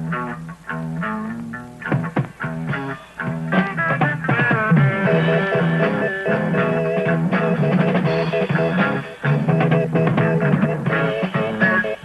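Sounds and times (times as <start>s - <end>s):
bass guitar: 0.0s - 12.0s
electric guitar chords: 0.0s - 12.0s.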